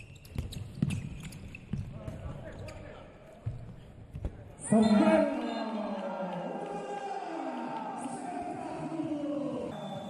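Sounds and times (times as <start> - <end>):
players shouting: 4.7 - 9.9.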